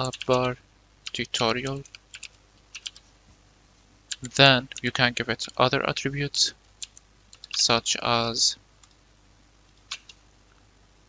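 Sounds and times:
keyboard typing: 0.0 - 3.1, 4.1 - 5.6, 6.8 - 7.7, 9.7 - 10.2.

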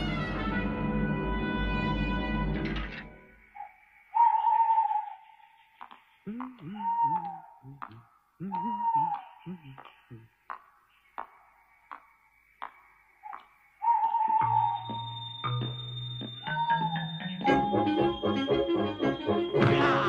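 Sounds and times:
long whistle-like notes: 6.3 - 10.3, 11.6 - 20.0
short low vocal sounds: 6.3 - 10.3.

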